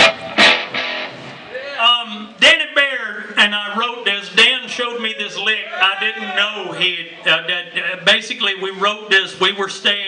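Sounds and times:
electric guitar chords: 0.0 - 1.8.

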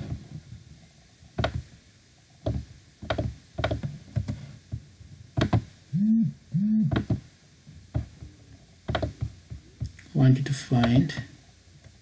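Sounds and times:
person humming: 5.9 - 7.1.

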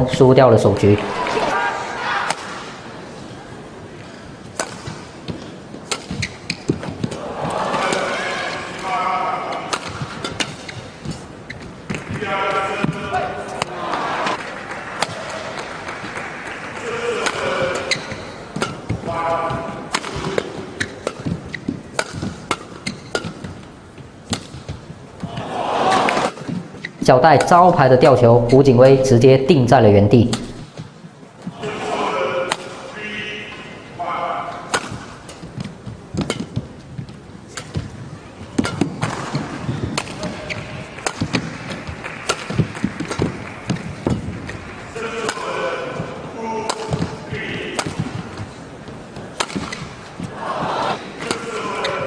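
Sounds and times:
voice over hall speakers: 0.0 - 2.2, 12.1 - 14.0, 19.0 - 19.9, 27.0 - 30.6, 31.5 - 34.7, 44.9 - 47.8, 50.4 - 52.0
racket hitting shuttlecock: 4.5 - 7.2, 9.5 - 12.2, 15.0 - 16.0, 16.8 - 26.7, 34.7 - 38.0, 38.6 - 44.6, 46.6 - 48.6, 49.2 - 50.3.

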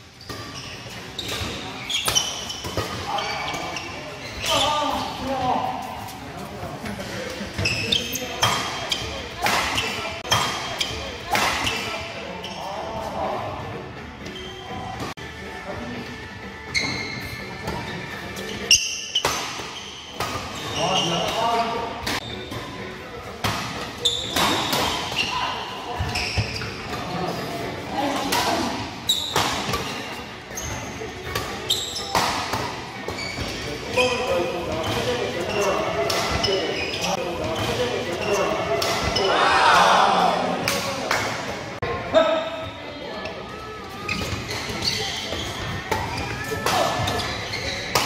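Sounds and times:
players' voices: 0.6 - 48.0.

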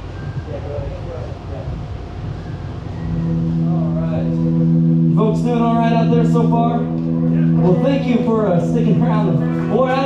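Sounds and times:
low rumbling noise: 0.0 - 10.0
amplified instrument note: 3.0 - 10.0.

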